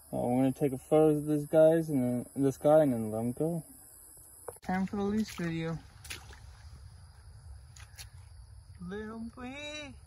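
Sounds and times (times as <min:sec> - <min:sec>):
crickets chorus: 0:00.0 - 0:10.0.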